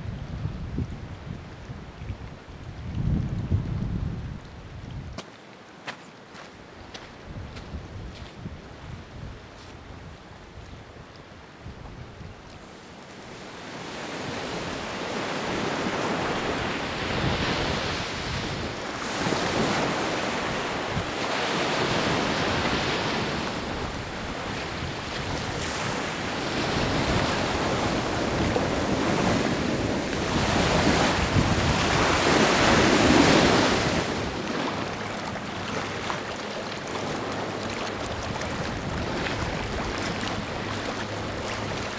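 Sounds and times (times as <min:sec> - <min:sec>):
wind buffeting microphone: 0:00.0 - 0:05.2, 0:06.8 - 0:12.7, 0:14.1 - 0:41.9
waves washing: 0:09.4 - 0:41.9.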